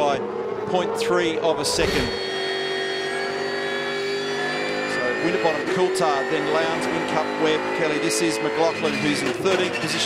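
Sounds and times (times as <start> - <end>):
racing car engine at high revs: 0.0 - 10.0.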